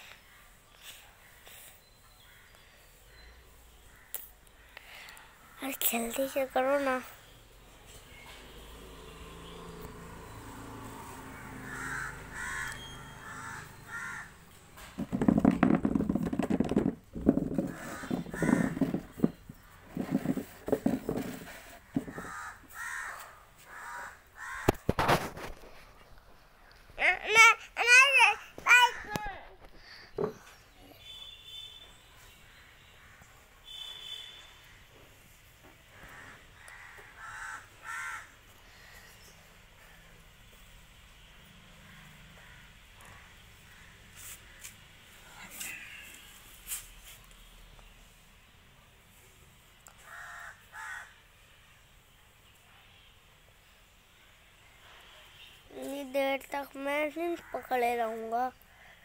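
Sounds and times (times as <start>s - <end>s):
bird calling: 11.4s - 14.5s, 17.6s - 19.8s
crow cawing: 11.6s - 14.4s, 17.7s - 19.0s, 22.0s - 24.8s, 36.0s - 38.9s, 41.9s - 44.0s, 50.0s - 51.2s
sharp knocks: 14.8s - 22.4s.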